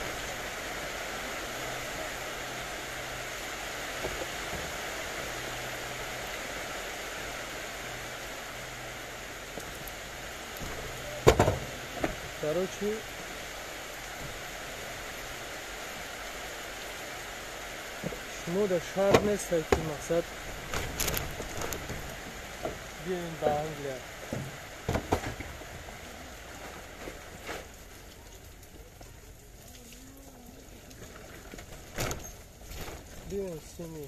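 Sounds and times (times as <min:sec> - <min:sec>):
steady hiss: 0:00.0 - 0:34.0.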